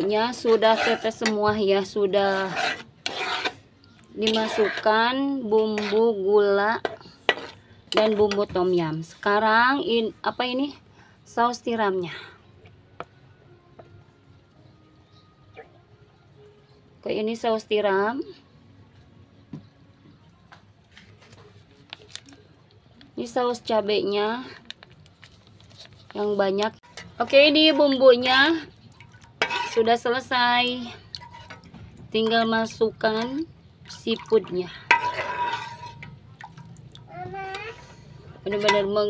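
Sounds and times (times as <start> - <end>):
paste popping in a wok: 2.3 - 3.6, 26.8 - 30.2, 33.2 - 37.1
sauce sloshing and dripping: 26.9 - 30.1, 33.2 - 37.1.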